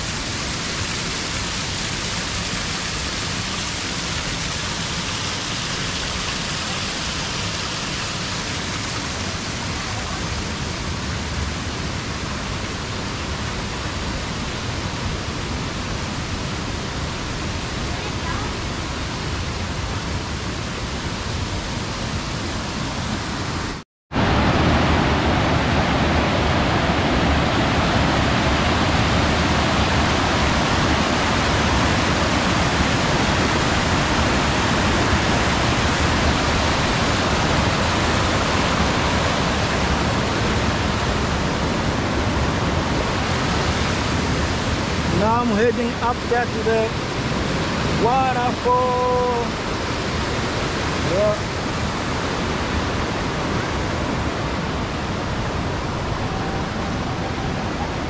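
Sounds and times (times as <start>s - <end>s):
waterfall rushing over rocks: 0.0s - 58.0s.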